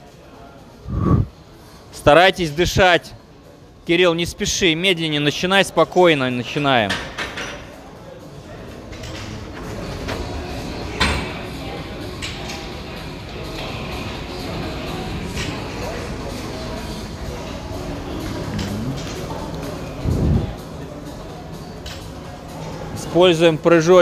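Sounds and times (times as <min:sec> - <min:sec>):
steady background noise: 0:00.0 - 0:24.0
indistinct voices: 0:17.7 - 0:20.6.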